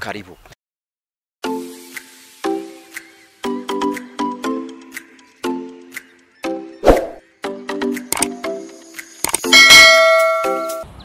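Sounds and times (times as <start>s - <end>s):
loud ringing bell-like hit: 9.6s - 10.8s.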